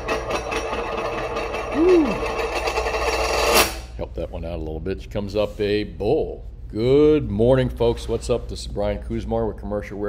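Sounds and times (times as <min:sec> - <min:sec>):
coin spinning on a tabletop: 0:00.0 - 0:03.8.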